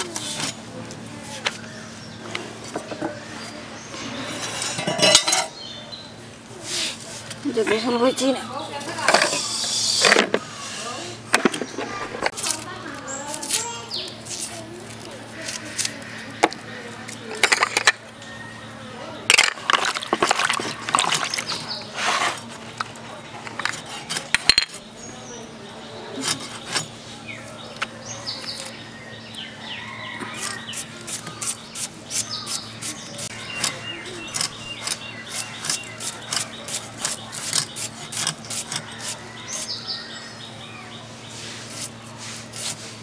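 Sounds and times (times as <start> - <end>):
plastic dish clattering on concrete: 11.3 - 12.4, 17.3 - 18.0, 19.3 - 24.8
fish scraped against iron blade: 30.3 - 39.8.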